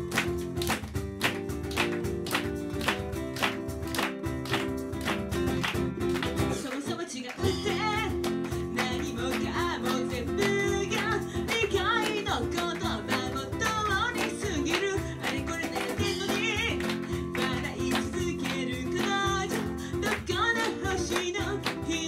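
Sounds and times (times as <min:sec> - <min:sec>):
acoustic guitar: 0:00.0 - 0:22.0
cajon beat: 0:00.0 - 0:22.0
woman singing: 0:06.5 - 0:22.0.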